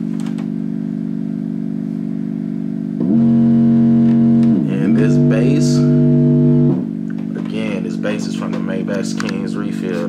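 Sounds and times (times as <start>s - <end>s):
sub-bass synth notes: 2.7s - 7.1s.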